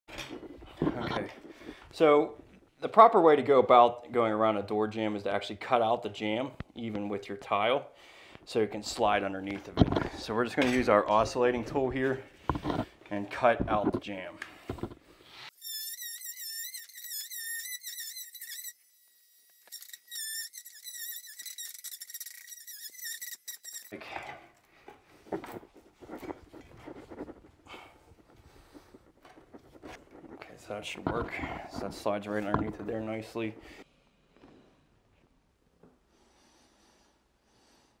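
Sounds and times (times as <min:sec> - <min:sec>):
multi-tool high wavering whine: 0:15.5 - 0:23.9.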